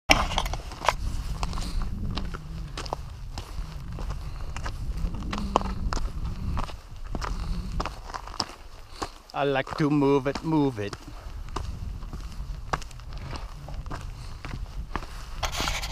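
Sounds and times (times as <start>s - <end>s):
steady low rumble: 0.1s - 9.3s, 10.3s - 15.9s
footsteps crunching on gravel: 0.1s - 15.9s.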